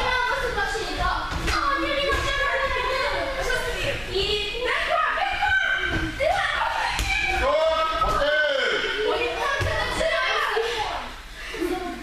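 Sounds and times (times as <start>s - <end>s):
children shouting: 4.6s - 11.0s.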